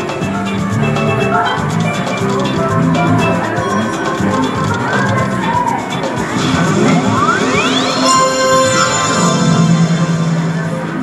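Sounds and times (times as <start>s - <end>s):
slot machine bonus music: 0.0s - 11.0s.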